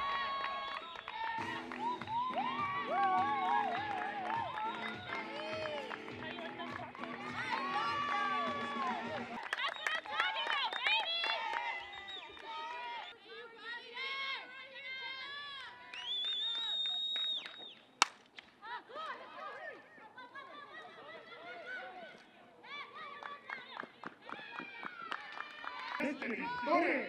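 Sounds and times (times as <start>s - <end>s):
voices calling and cheering: 0.0s - 17.1s, 18.6s - 27.0s
background music: 1.4s - 9.5s.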